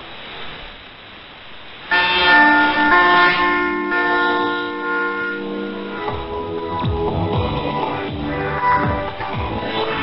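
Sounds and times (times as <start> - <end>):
radio background hiss: 0.0 - 6.7, 7.8 - 10.0
music through a shortwave radio: 5.4 - 10.0.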